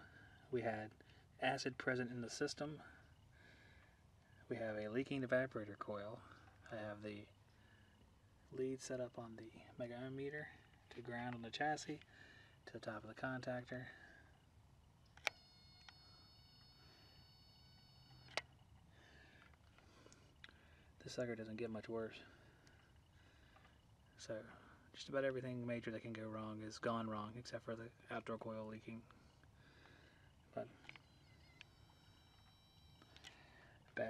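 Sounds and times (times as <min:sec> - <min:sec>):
thin steady high tones: 0:00.0 - 0:34.0
high electronic whine: 0:15.3 - 0:18.6, 0:30.9 - 0:33.3.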